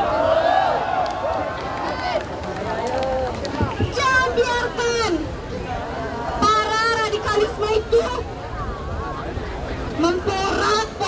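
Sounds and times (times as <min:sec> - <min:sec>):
woman speaking into microphone: 0:06.4 - 0:08.2, 0:10.0 - 0:11.0.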